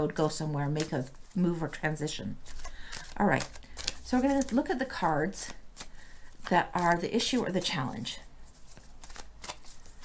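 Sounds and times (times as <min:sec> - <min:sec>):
cards being shuffled: 0:00.2 - 0:01.5, 0:02.3 - 0:07.7, 0:08.4 - 0:10.0.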